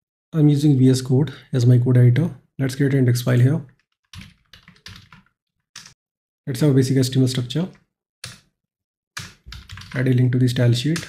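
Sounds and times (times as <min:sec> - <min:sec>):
computer keyboard typing: 0:03.8 - 0:06.0, 0:09.2 - 0:10.1.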